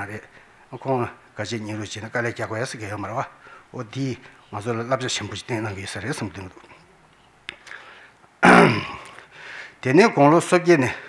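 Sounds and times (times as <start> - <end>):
man speaking: 0.0 - 6.9, 9.8 - 11.0
man clearing throat: 8.4 - 9.2.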